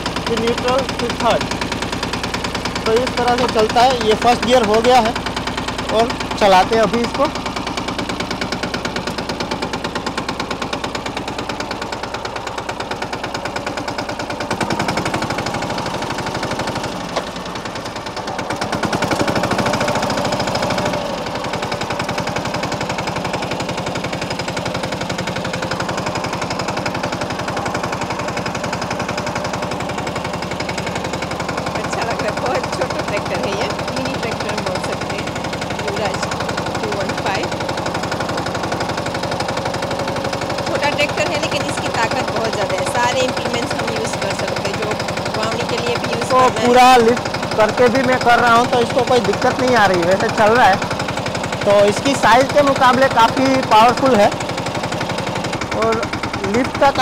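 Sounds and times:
tractor diesel engine knocking: 0.0s - 57.0s.

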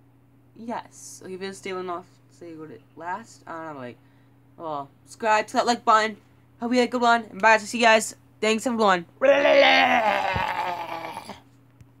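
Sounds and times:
boy laughing: 9.2s - 11.4s.

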